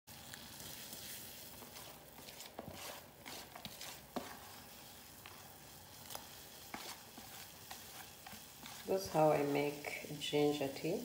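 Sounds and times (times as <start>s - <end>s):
pot of water boiling: 0.1s - 11.0s.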